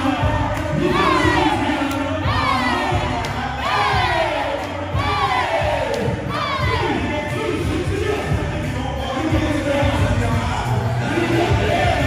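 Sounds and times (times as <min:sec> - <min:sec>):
hip hop music with bass beat: 0:00.0 - 0:12.0
group whooping shouts: 0:00.8 - 0:07.0.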